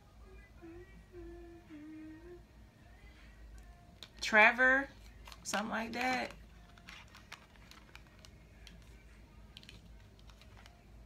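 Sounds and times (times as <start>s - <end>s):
woman humming softly: 0.3s - 3.0s.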